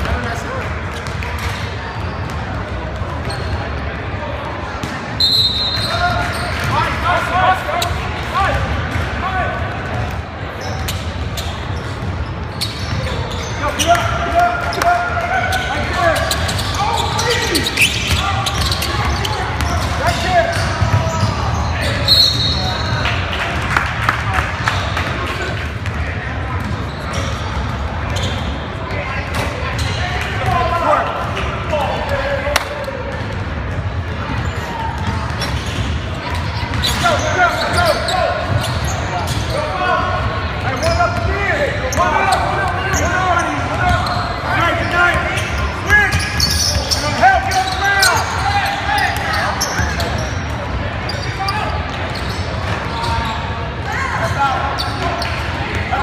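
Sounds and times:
shoe squeals: 1.0 - 4.0, 5.2 - 8.5, 10.5 - 23.1, 26.6 - 30.9, 34.2 - 56.0
people shouting in gym: 13.0 - 23.4, 24.3 - 51.9, 52.5 - 56.0
basketball bouncing on wood court: 17.9 - 21.3.

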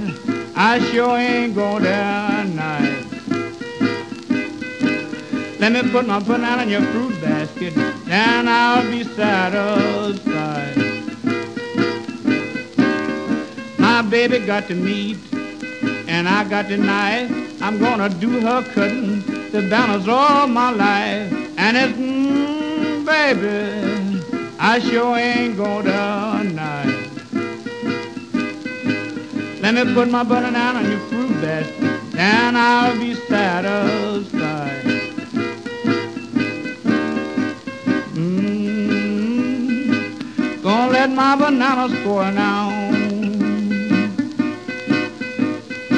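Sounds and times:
person singing: 0.0 - 3.2, 4.8 - 11.0, 13.8 - 15.3, 16.0 - 27.2, 29.6 - 35.1, 37.9 - 44.4
acoustic guitar blues fill: 0.0 - 45.9.

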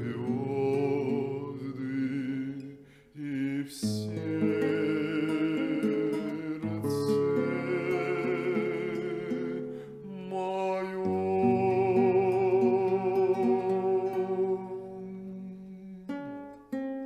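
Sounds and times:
plucked guitar chords: 0.0 - 3.0, 3.8 - 17.0.

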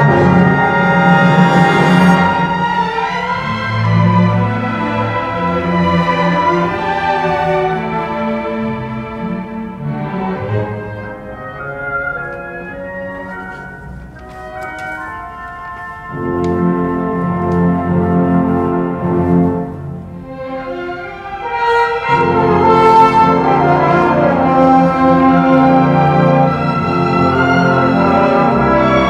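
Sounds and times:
orchestra playing sustained chords: 0.0 - 29.0.

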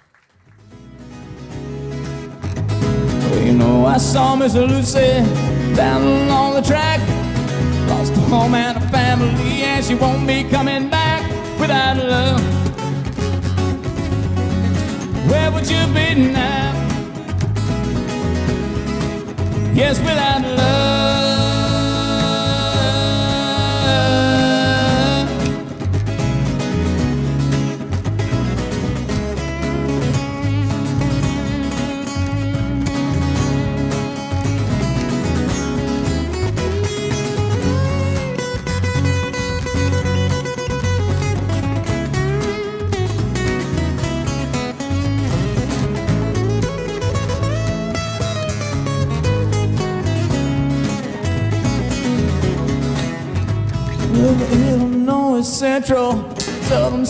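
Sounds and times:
strummed rhythm guitars: 0.0 - 57.0
lead acoustic guitar solo: 0.1 - 57.0.

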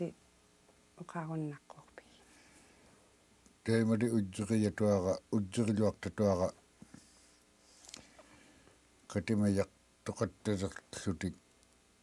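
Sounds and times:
man speaking: 3.6 - 6.6, 9.1 - 11.4.

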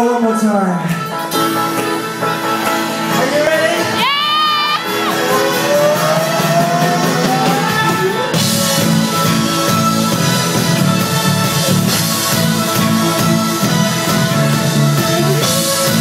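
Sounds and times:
electric guitar: 0.0 - 16.0
drums and cymbals: 1.0 - 16.0
man singing: 3.0 - 8.4.

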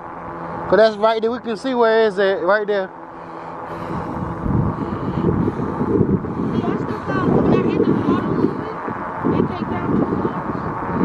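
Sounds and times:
wind buffeting microphone: 3.2 - 11.0.

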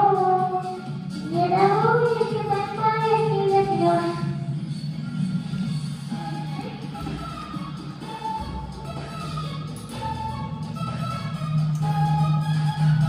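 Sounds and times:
children's pop backing track: 0.0 - 13.0.

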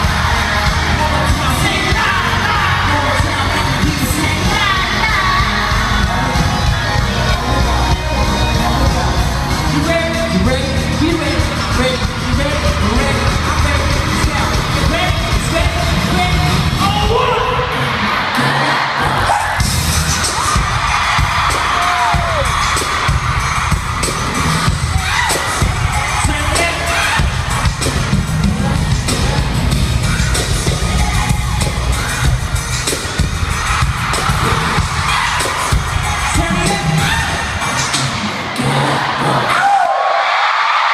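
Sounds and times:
bass-heavy dance beat: 0.0 - 39.5
fans screaming and cheering: 0.0 - 40.9.

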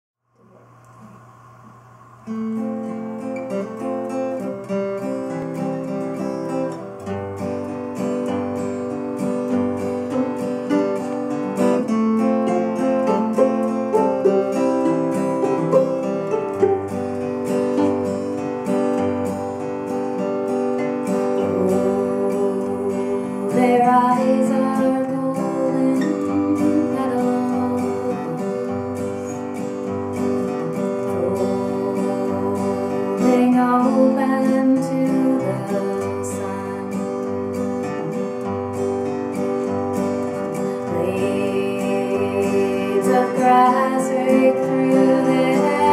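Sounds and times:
strummed acoustic guitar: 0.4 - 45.9
fiddle playing: 12.5 - 18.8.

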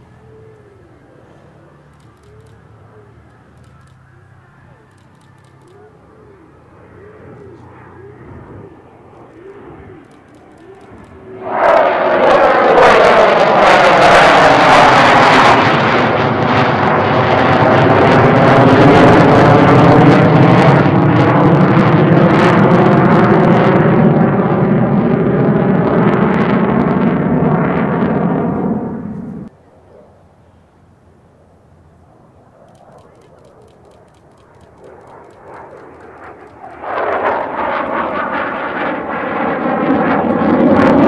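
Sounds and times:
fighter jet roaring past: 0.0 - 41.0.

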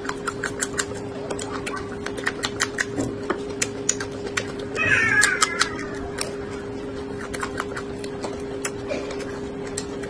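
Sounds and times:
chili pepper crunching bites: 0.0 - 6.4, 7.1 - 10.0
steady low hum: 0.0 - 10.0
short high falling cry: 4.8 - 6.0.

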